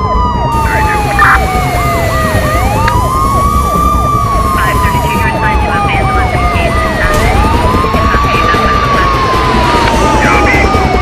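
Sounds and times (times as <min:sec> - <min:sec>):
siren wailing: 0:00.0 - 0:11.0
siren yelping: 0:00.0 - 0:11.0
steady low rumble: 0:00.0 - 0:11.0.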